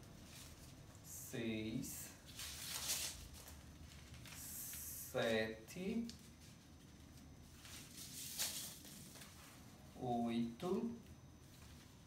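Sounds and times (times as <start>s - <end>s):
ribbon rustling: 2.2s - 4.5s, 6.0s - 9.9s
ribbon swish: 7.7s - 9.4s.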